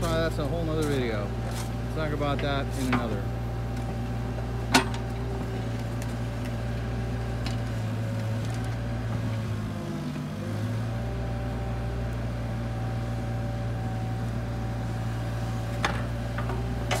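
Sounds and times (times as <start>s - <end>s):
excavator diesel engine running: 0.0s - 17.0s.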